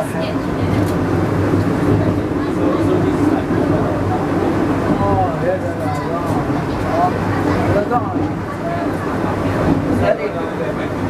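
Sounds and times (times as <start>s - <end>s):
funicular car rumbling on track: 0.0s - 11.0s.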